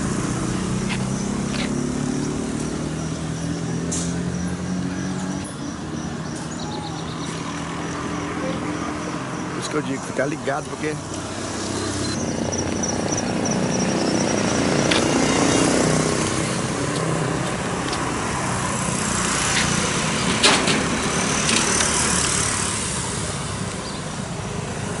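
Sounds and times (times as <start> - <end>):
outdoor noise: 0.0 - 25.0.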